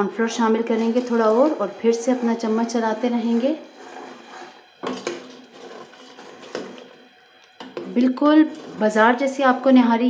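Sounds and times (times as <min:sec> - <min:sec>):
ladle stirring thick gravy: 0:00.3 - 0:09.4
ladle scraping and knocking pot: 0:00.5 - 0:07.0, 0:07.6 - 0:09.0.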